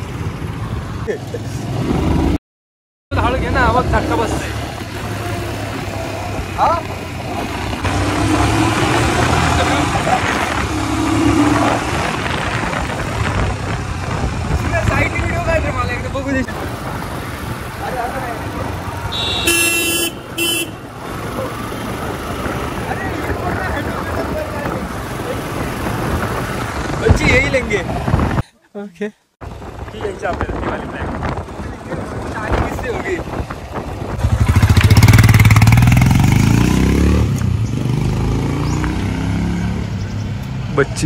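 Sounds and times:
motorcycle engine: 3.1s - 28.0s, 31.2s - 40.8s
wind noise: 7.3s - 17.6s, 21.8s - 28.4s, 29.4s - 37.9s
vehicle horn honking: 19.0s - 20.8s.

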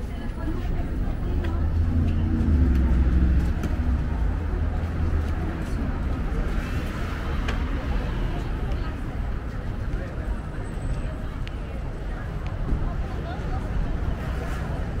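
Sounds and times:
people talking: 0.0s - 15.0s
traffic rumble: 0.0s - 15.0s.

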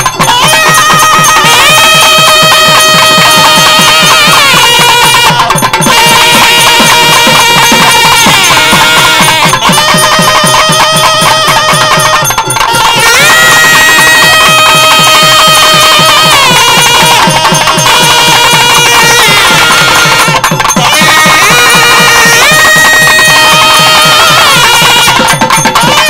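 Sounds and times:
fast steady drumming: 0.0s - 26.0s
double reed melody: 4.6s - 22.6s.

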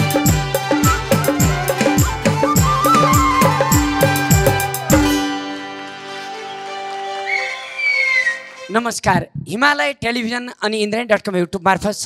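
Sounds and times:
drum strokes: 0.0s - 6.3s
high sliding note: 0.7s - 8.8s
folk band chord ringing out: 3.8s - 7.3s.

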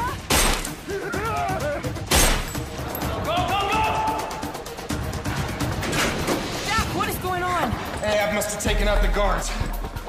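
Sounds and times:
background music: 0.0s - 10.0s
loud gunshots: 2.1s - 2.6s.

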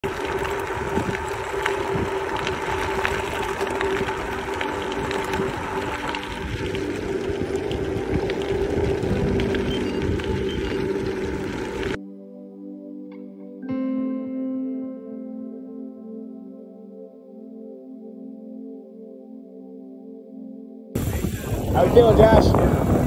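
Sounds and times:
bicycle tyres rolling on gravel: 0.0s - 12.0s, 21.0s - 23.0s
small clicks of gravel: 0.0s - 12.0s
wind buffeting microphone: 0.0s - 12.0s, 21.0s - 23.0s.

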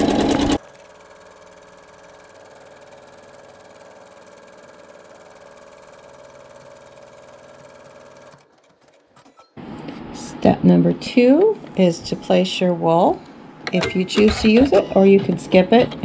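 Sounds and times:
embroidery machine stitching: 0.0s - 9.5s.

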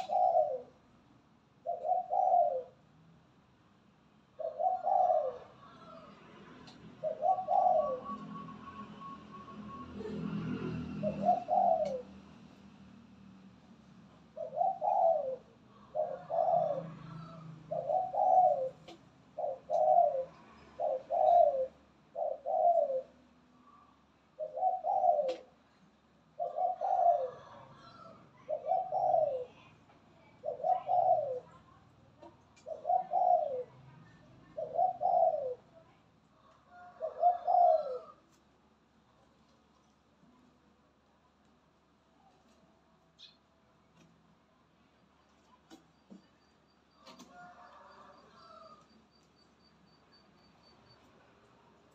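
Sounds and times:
dove cooing: 0.0s - 0.8s, 1.6s - 2.8s, 4.3s - 12.5s, 14.3s - 23.3s, 24.3s - 38.3s, 47.0s - 48.9s.

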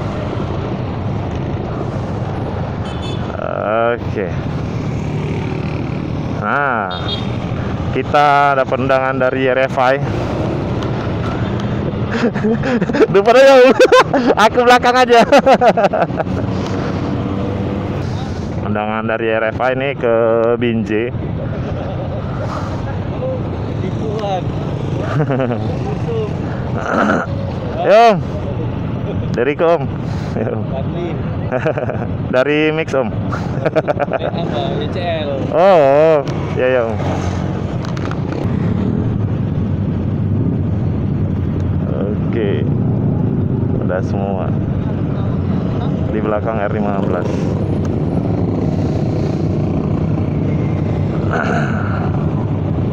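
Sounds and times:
motorcycle engines running: 0.0s - 52.9s
street traffic: 0.0s - 52.9s.

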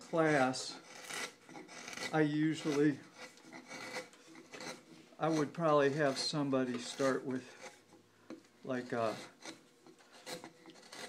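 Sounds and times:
carving gouge scraping wood: 0.0s - 11.0s.

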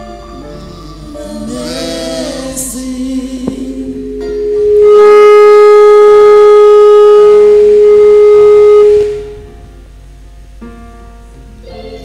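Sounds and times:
long held musical note: 0.0s - 10.6s
quiet music: 0.0s - 12.0s.

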